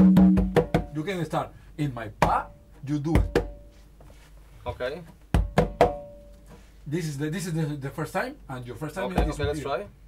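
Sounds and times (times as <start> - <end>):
conga drums struck by hand: 0.0 - 1.1, 2.1 - 3.7, 5.2 - 6.3, 9.1 - 9.7.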